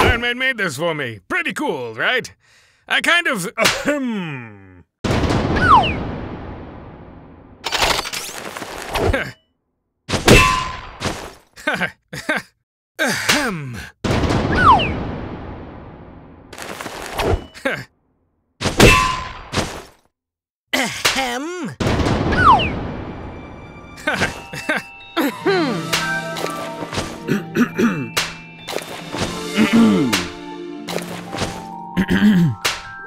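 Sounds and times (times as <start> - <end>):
man grunting: 3.6 - 4.9, 11.6 - 14.0, 20.8 - 21.8, 25.2 - 25.9, 29.6 - 30.3, 32.0 - 32.6
cartoon crash: 5.1 - 6.6, 14.1 - 15.3, 21.8 - 30.4
sudden burst of noise: 22.0 - 24.6
background music: 22.4 - 33.0.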